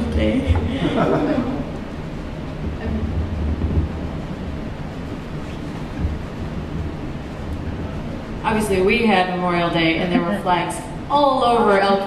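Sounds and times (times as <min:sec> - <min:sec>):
low room noise rumble: 0:00.0 - 0:12.0.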